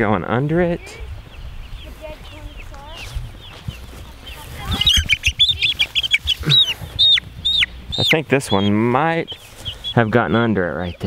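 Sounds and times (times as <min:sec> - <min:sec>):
chick peeping: 0:00.0 - 0:11.0.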